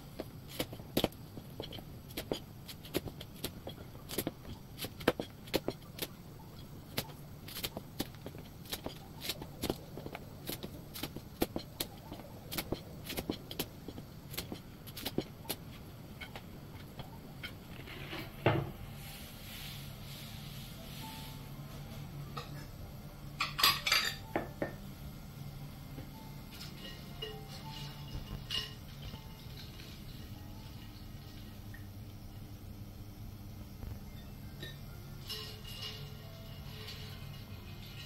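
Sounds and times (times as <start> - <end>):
dishes and utensils clinking: 21.9 - 22.8, 23.4 - 24.8, 26.5 - 31.0, 34.6 - 38.0.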